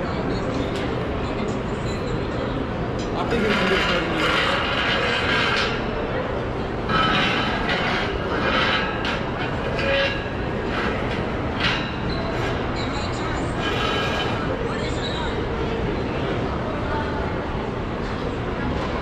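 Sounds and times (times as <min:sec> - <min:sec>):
food court hubbub: 0:00.0 - 0:19.0
metal chairs scraping on tiled floor: 0:03.2 - 0:06.2, 0:06.8 - 0:14.7.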